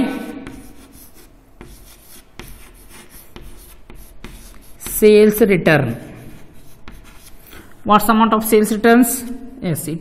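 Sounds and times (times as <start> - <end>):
chalk scratching on chalkboard: 0.4 - 5.4, 6.0 - 7.8.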